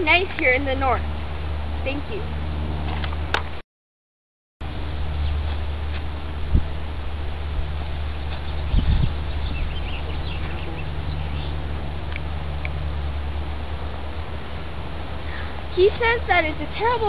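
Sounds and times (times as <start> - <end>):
low rumble: 4.6 - 17.0
birds chirping: 7.8 - 13.1.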